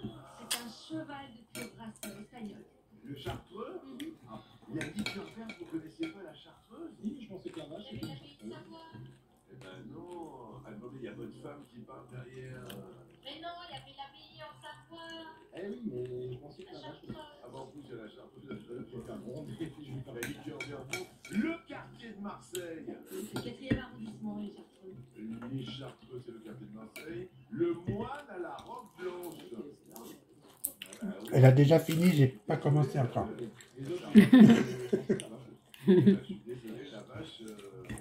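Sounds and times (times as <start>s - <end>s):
tableware clinking against plates: 4.7s - 6.2s, 8.0s - 8.6s, 20.1s - 21.5s.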